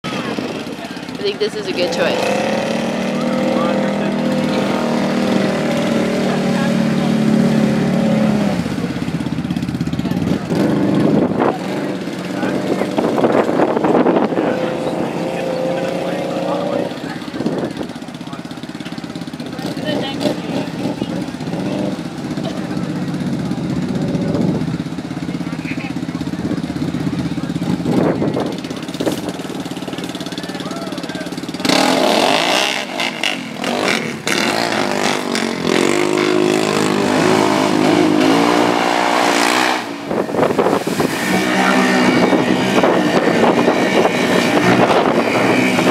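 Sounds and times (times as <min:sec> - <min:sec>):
atv engines idling and revving: 0:00.0 - 0:45.9.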